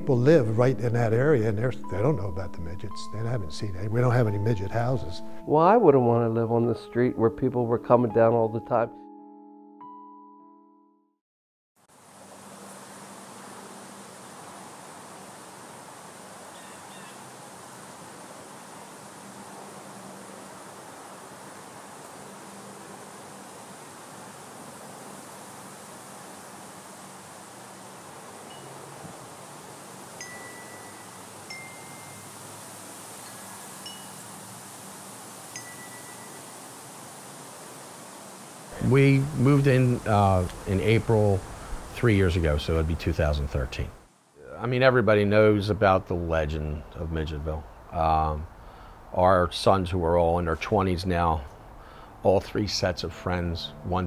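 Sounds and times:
steady hiss: 0:00.0 - 0:05.7, 0:11.8 - 0:54.0
wind chime tones: 0:28.5 - 0:28.8, 0:30.2 - 0:32.4, 0:33.2 - 0:34.3, 0:35.5 - 0:36.6.

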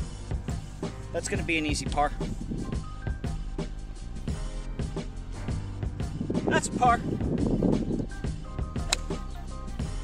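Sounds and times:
background music with steady beat: 0:00.0 - 0:10.0
golf club striking ball: 0:08.8 - 0:09.4.

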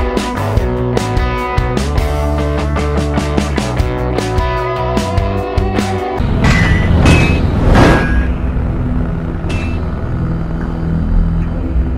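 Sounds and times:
low rumbling drone: 0:06.2 - 0:11.9
bright metallic ping: 0:06.4 - 0:08.7, 0:09.5 - 0:09.9.

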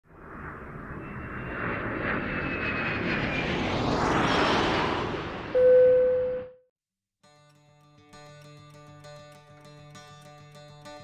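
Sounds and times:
jet airplane roar: 0:00.1 - 0:05.9.

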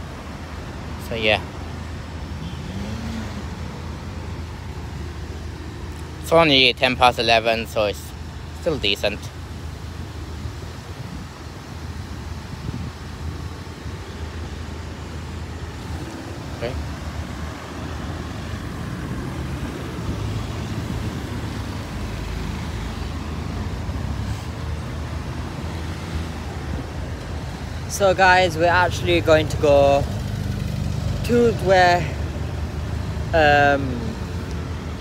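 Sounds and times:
road traffic rumble: 0:00.0 - 0:35.0.

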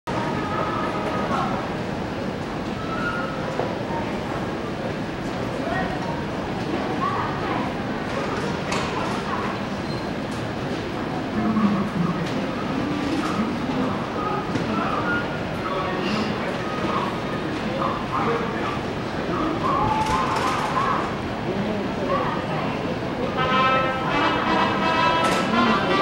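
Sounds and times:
railway platform din: 0:00.1 - 0:26.0
scattered voices: 0:00.1 - 0:26.0.

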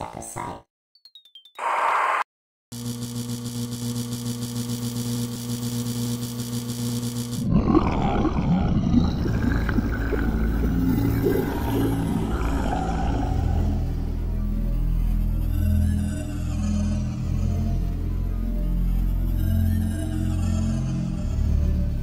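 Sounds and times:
pulsing electric laser buzz: 0:02.8 - 0:07.4
rough low rumbling effect: 0:07.5 - 0:14.8.

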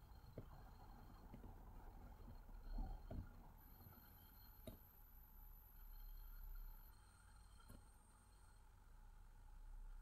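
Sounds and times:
thin high-pitched whine: 0:00.0 - 0:10.0.

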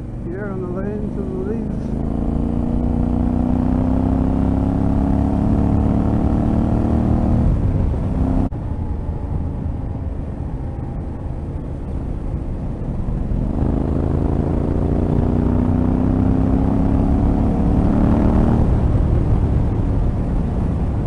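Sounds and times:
motorcycle engine running: 0:00.0 - 0:21.0
wind and road noise: 0:00.0 - 0:21.0.

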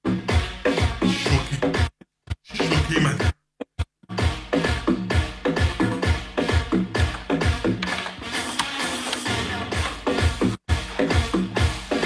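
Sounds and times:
electronic dance music: 0:00.1 - 0:01.9, 0:02.5 - 0:03.4, 0:04.2 - 0:12.0.

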